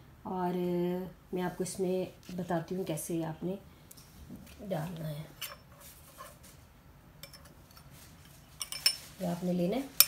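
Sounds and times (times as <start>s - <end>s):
metal spoon clinking on glass bowl: 7.2s - 7.5s, 8.6s - 9.1s.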